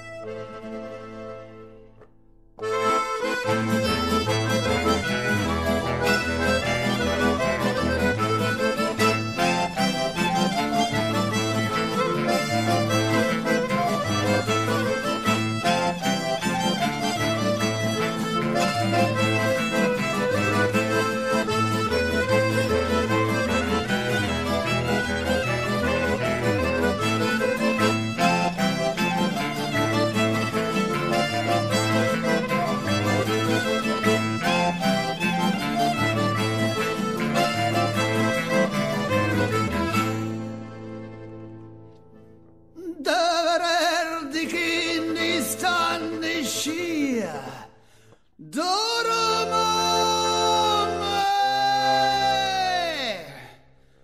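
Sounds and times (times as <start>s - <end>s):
instrumental music with repeating bass: 0.0s - 42.4s.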